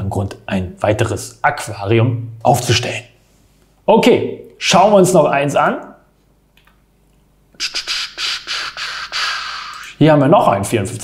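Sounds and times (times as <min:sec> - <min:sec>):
man making hissing mouth noises: 0:07.5 - 0:10.0.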